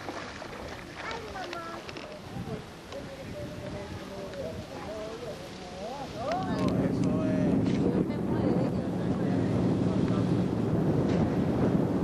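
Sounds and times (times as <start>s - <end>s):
water noise: 0.0s - 12.0s
wind: 0.0s - 12.0s.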